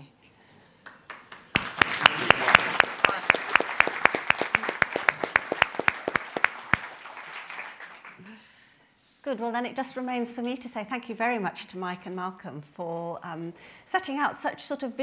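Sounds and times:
audience applauding: 0:00.8 - 0:08.3
sharp single claps: 0:01.1 - 0:08.1.

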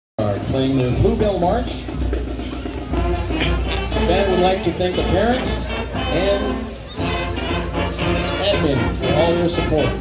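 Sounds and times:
marching band playing: 0:00.2 - 0:10.0.

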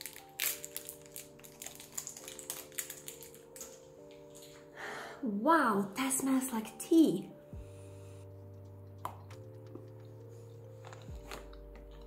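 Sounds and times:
foil wrapper crinkling: 0:00.0 - 0:04.6
soft background music: 0:00.0 - 0:12.0.

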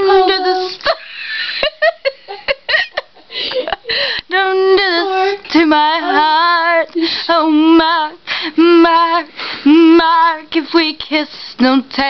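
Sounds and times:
woman singing unaccompanied: 0:00.0 - 0:01.0, 0:04.2 - 0:12.0.

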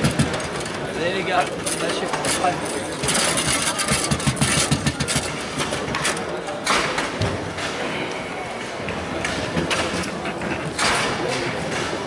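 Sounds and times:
table football clicks and knocks: 0:00.0 - 0:01.0, 0:03.0 - 0:07.8.

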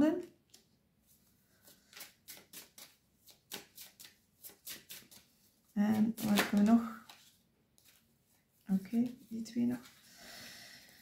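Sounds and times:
cards being shuffled: 0:01.6 - 0:08.1.

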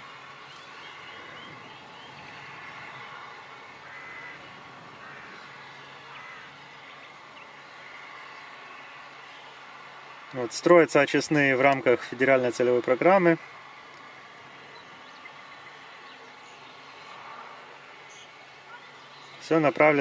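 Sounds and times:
low steady background noise: 0:00.0 - 0:20.0
faint bird calls: 0:00.4 - 0:09.6.

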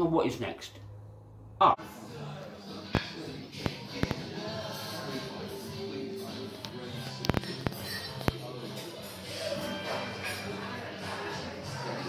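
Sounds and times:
background music: 0:00.0 - 0:12.0
murmur of voices: 0:01.8 - 0:12.0.

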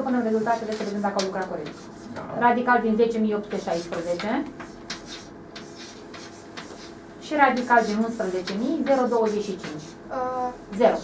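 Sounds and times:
chalk writing on blackboard: 0:00.0 - 0:02.1, 0:03.1 - 0:11.0.

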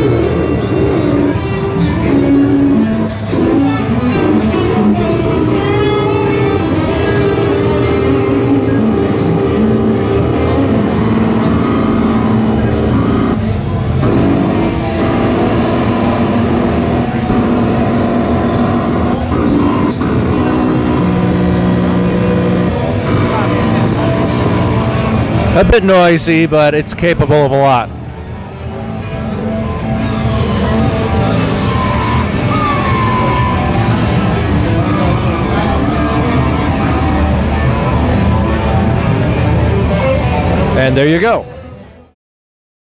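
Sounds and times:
buzzy synthesizer notes: 0:00.0 - 0:41.4.

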